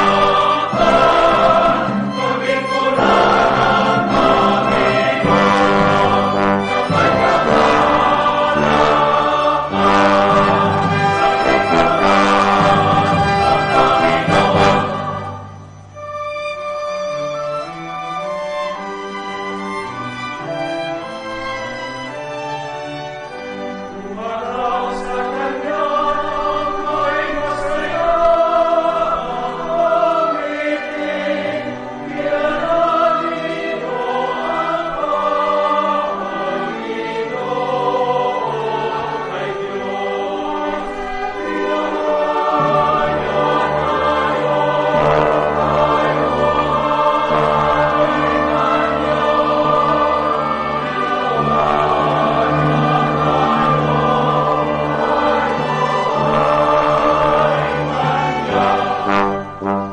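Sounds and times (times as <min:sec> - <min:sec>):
church choir singing a hymn: 0:00.0 - 0:16.0, 0:16.6 - 0:59.9
instrumental accompaniment: 0:00.0 - 0:59.9.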